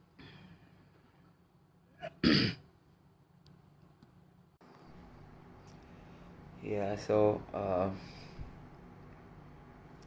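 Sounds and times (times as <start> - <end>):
man clearing his throat: 2.0 - 2.7.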